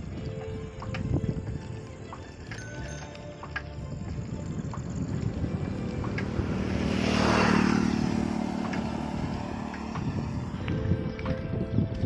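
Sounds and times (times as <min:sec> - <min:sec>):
motor vehicle passing: 0:04.2 - 0:11.7.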